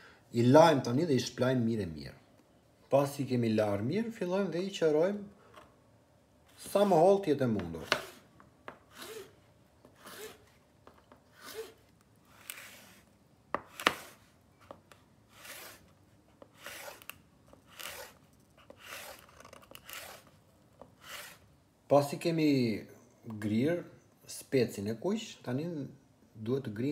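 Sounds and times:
knife slicing on cutting board: 11.4 - 14.2, 16.5 - 17.1, 17.7 - 20.3.

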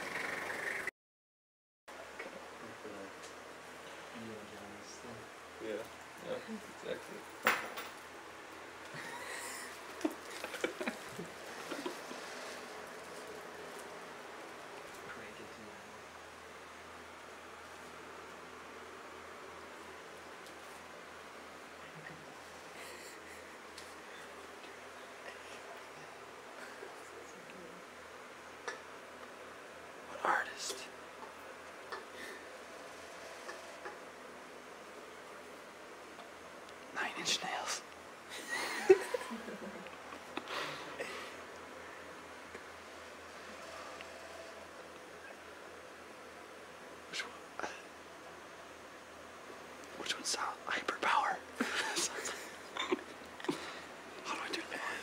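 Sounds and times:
person whispering: 30.1 - 30.9, 36.9 - 37.9, 47.1 - 47.9, 50.0 - 52.3, 54.2 - 55.0
hushed voices: 50.0 - 55.0.

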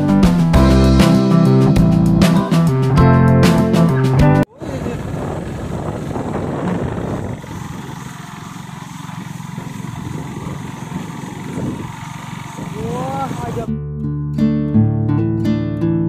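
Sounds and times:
wind rushing over microphone: 4.5 - 13.7
vehicle rumble on road: 4.6 - 13.7.

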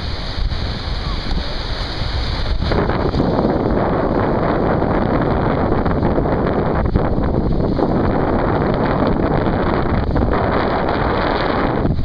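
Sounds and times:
small waves washing onto sand: 0.0 - 12.0
wind buffeting microphone: 0.0 - 12.0.

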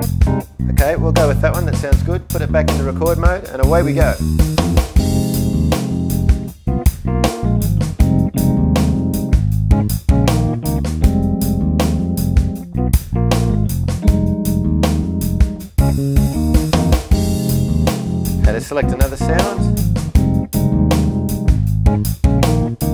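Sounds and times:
drum rhythm loop: 0.0 - 22.9
keyboard played live: 0.0 - 22.9.

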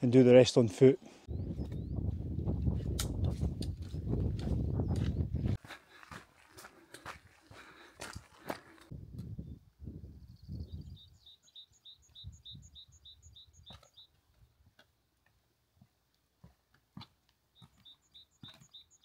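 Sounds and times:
wind buffeting microphone: 1.3 - 5.7, 8.9 - 11.2, 12.2 - 13.7
footsteps crunching on gravel: 3.3 - 8.9
small bird chirping: 9.4 - 14.6, 17.5 - 19.0.

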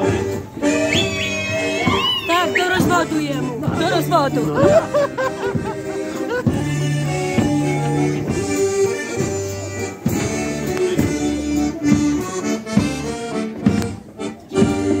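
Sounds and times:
accordion playing dance tune: 0.0 - 15.0
drum strikes: 1.8 - 14.0.

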